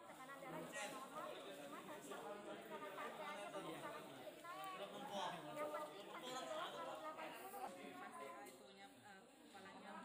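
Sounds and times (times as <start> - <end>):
indistinct chatter of people: 0.0 - 10.0.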